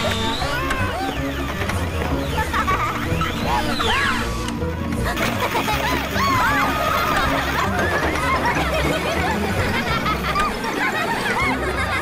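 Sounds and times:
girls giggling: 2.2 - 3.9, 5.0 - 12.0.

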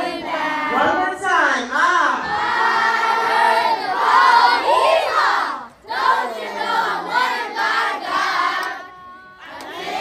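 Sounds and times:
children singing together: 0.0 - 0.8, 2.3 - 10.0.

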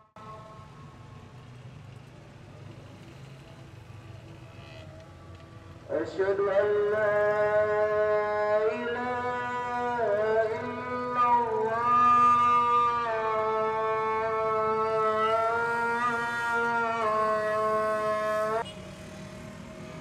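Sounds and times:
man chanting over loudspeaker: 0.0 - 0.9, 5.9 - 18.7
street traffic hum: 0.1 - 20.0.

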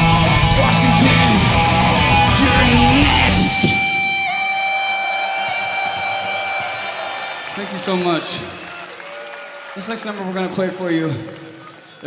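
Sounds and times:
held electric guitar tone: 0.0 - 7.0
crowd cheering: 0.0 - 12.0.

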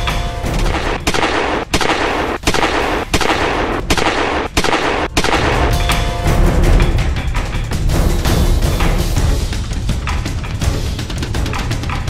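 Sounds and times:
gunshots with echo: 0.0 - 6.4
music: 0.0 - 12.0.

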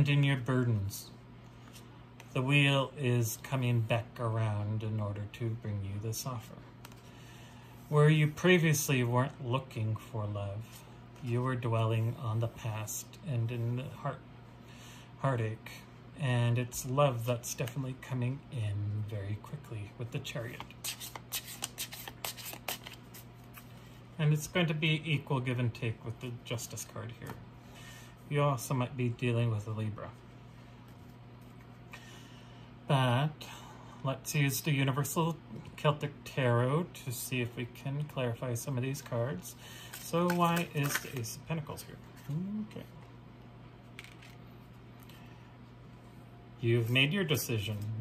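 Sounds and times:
low steady hum: 0.0 - 48.0
cards being handled: 20.4 - 23.9, 39.8 - 42.6, 43.9 - 44.7.

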